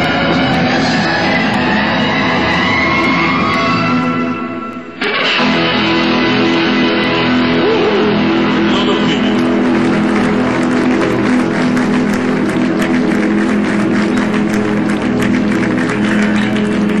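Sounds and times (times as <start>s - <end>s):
audience clapping: 0.0s - 3.8s, 4.7s - 17.0s
electric guitar sustained chord: 0.0s - 17.0s
live band playing: 0.0s - 17.0s.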